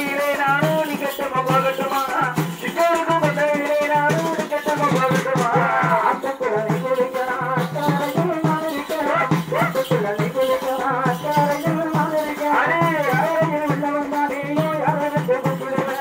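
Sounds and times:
steady drum beat: 0.0s - 16.0s
rattling cymbal or shaker: 6.0s - 16.0s.

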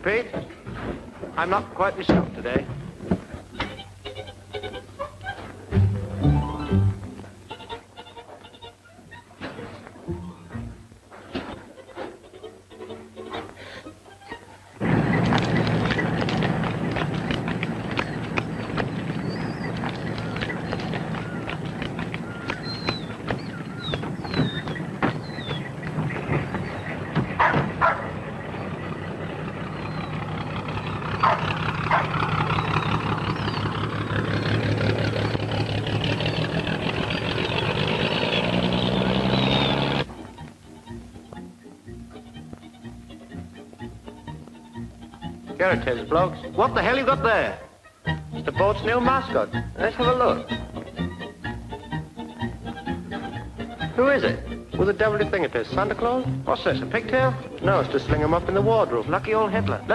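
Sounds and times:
faint music: 0.0s - 31.2s, 40.0s - 59.9s
motor boat engine running: 14.8s - 40.1s
short high squeaks: 22.1s - 28.0s.

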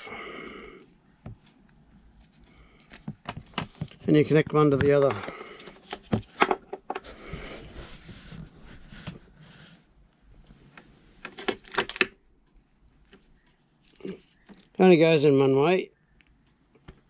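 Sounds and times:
cables rustling: 1.3s - 14.8s
plastic connectors clicking: 11.3s - 12.2s.

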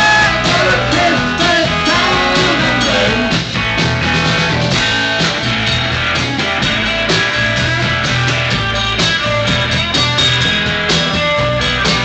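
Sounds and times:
garage rock band playing: 0.0s - 12.0s.

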